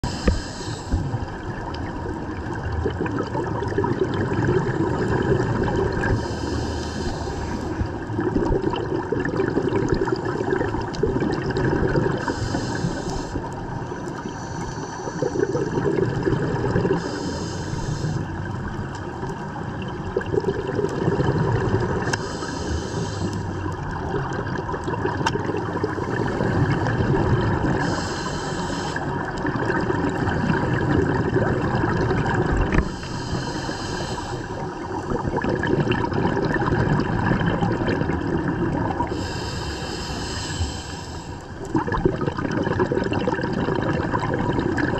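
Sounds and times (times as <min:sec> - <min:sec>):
diver breathing through regulator: 0:00.0 - 0:01.4, 0:04.7 - 0:08.0, 0:11.9 - 0:18.6, 0:21.2 - 0:23.7, 0:25.4 - 0:35.8, 0:38.8 - 0:41.7
underwater rumble: 0:00.0 - 0:44.9.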